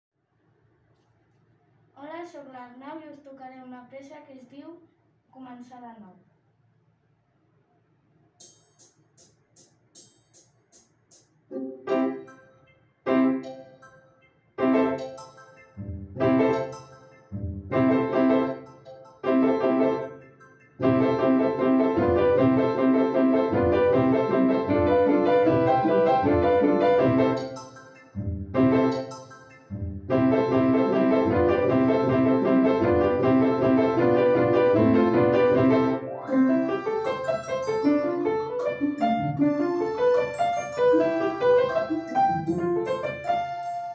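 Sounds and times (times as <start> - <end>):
upright piano playing: 11.6 - 12.4, 13.1 - 13.6, 14.6 - 17.0, 17.7 - 20.2, 20.8 - 27.9, 28.5 - 43.9.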